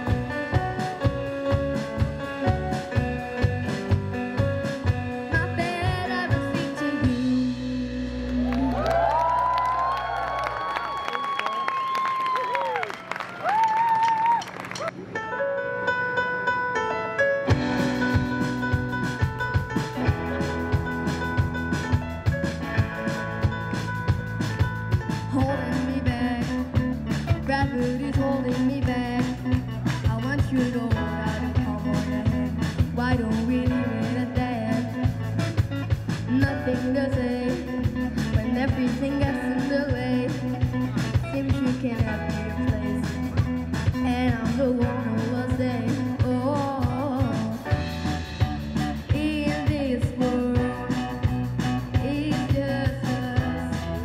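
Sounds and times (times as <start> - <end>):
drum kit: 0.0 - 11.6, 17.4 - 54.0
keyboard: 0.0 - 13.4, 14.5 - 54.0
bass guitar: 0.0 - 15.0, 17.4 - 54.0
electric guitar: 0.0 - 54.0
live band playing: 0.0 - 54.0
boy singing: 5.3 - 8.1, 36.3 - 43.3, 44.0 - 47.7, 49.1 - 51.2, 51.9 - 54.0
crowd cheering: 8.3 - 15.1.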